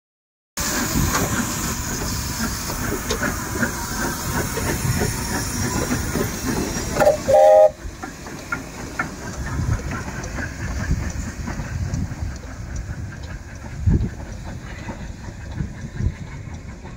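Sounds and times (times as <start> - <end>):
steam hiss and chuffing: 0.6 - 16.9
train rumbling and clanking on rails: 0.6 - 16.9
steam whistle blast: 7.0 - 7.8.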